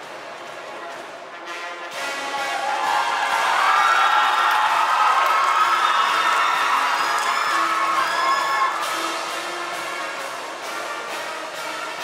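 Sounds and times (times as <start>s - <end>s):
brass band holding chords: 0.0s - 3.0s, 8.8s - 12.0s.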